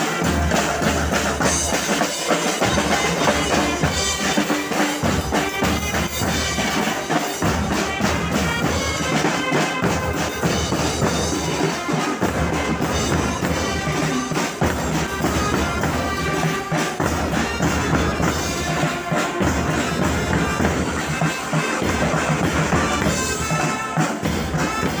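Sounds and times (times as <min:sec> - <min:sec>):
held wind instrument melody: 0:00.0 - 0:25.0
snare drums march rhythm: 0:00.0 - 0:25.0.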